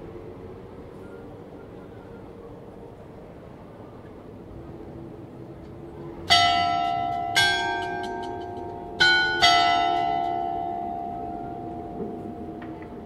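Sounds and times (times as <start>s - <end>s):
clock bells striking: 6.3s - 13.0s.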